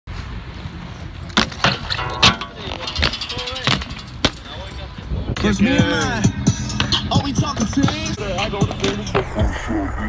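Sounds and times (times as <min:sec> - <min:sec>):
skate wheels rolling on concrete: 0:00.1 - 0:09.8.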